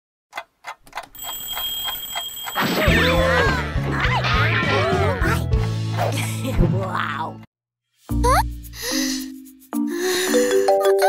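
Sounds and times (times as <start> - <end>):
cartoon clock ticking: 0.3 - 2.7.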